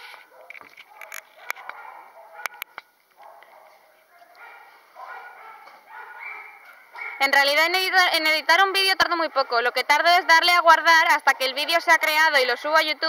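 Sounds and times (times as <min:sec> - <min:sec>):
faint dog barks and yips: 0:00.0 - 0:07.4, 0:09.2 - 0:10.6
sharp clicks: 0:02.4 - 0:03.3.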